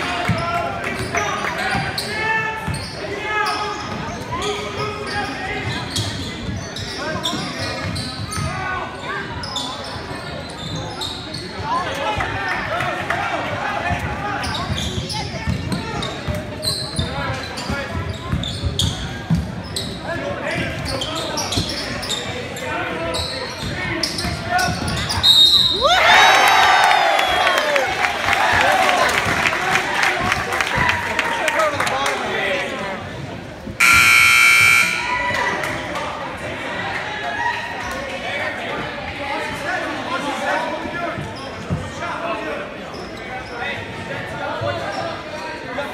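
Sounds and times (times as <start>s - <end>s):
spectators talking and calling out: 0.0s - 45.9s
sneakers squeaking: 1.0s - 12.7s, 14.0s - 25.9s, 42.8s - 44.0s, 44.6s - 45.6s
scoreboard buzzer: 33.8s - 35.2s.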